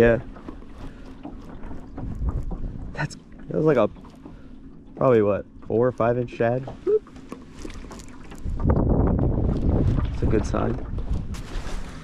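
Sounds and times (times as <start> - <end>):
light wind on microphone: 7.6 - 12.0.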